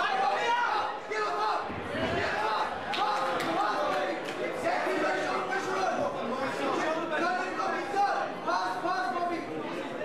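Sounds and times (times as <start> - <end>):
people calling out and talking: 0.0 - 10.0.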